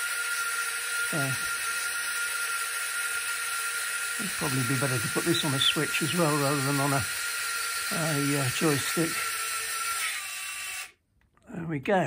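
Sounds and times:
electric motors whirring: 0.0s - 11.0s.

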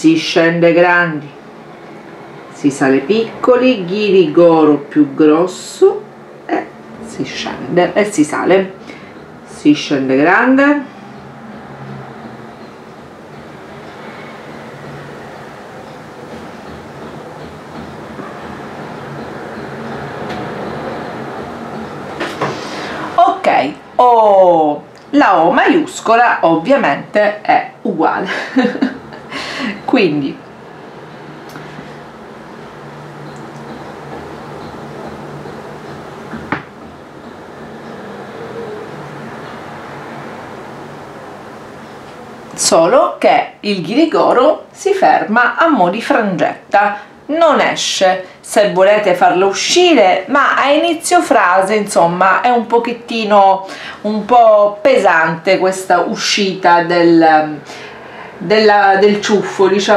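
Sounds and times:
room noise hum and hiss: 0.0s - 59.9s.

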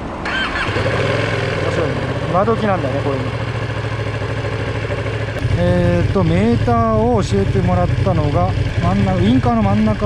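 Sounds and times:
motorcycle engine idling: 0.3s - 10.0s.

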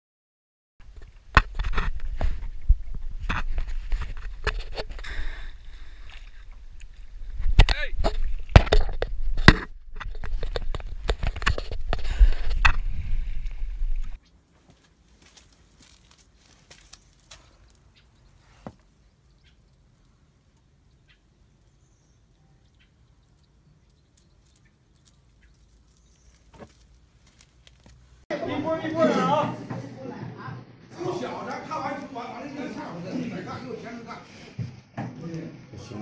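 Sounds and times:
wind rumble on microphone: 0.9s - 5.1s, 6.4s - 14.2s
water sloshing and splashing: 1.8s - 14.2s, 15.0s - 28.2s
voices: 28.3s - 36.0s.

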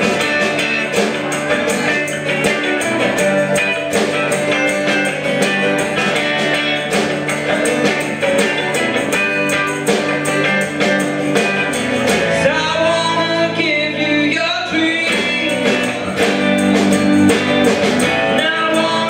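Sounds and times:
percussion steady beat: 0.0s - 13.8s, 14.7s - 19.0s
electric and acoustic guitars: 0.0s - 19.0s.

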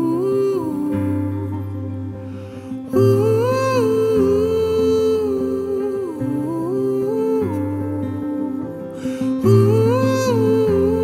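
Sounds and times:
acoustic guitar chords: 0.0s - 11.0s
person humming melody: 0.0s - 11.0s.

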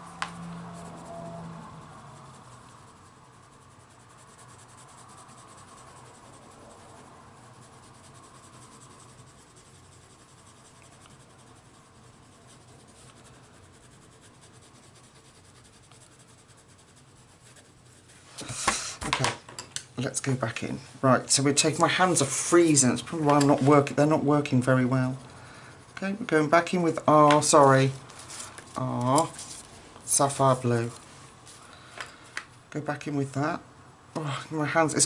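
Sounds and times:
pencil scratching on paper: 0.0s - 18.6s, 21.4s - 31.0s
pencils clicking and knocking: 23.2s - 23.6s.

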